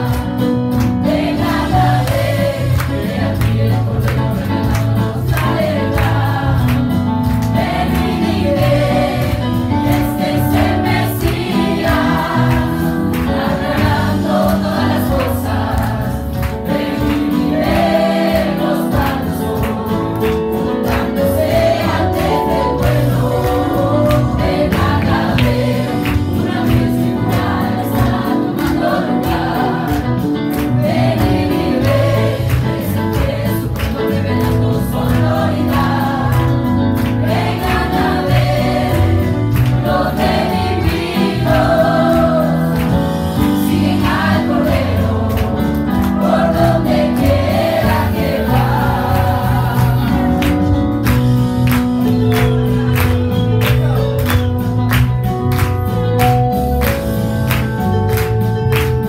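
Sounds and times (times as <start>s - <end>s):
group singing worship song: 0.0s - 54.5s
electric bass: 0.0s - 59.0s
electronic keyboard: 0.0s - 59.0s.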